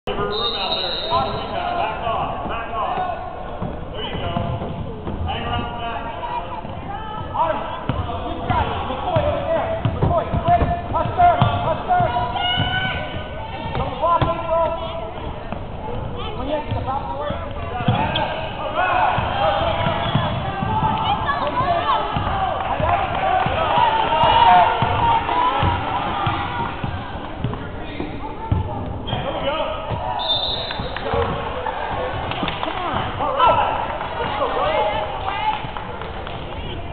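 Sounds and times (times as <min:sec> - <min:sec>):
basketball bouncing on hardwood floor: 0:09.2 - 0:13.1, 0:19.2 - 0:27.6.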